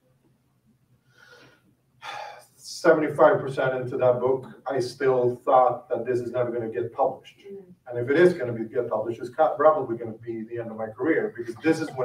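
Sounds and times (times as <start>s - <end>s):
man breathing: 1.0s - 2.5s
faint low hum: 1.8s - 12.0s
man speaking: 2.0s - 12.0s.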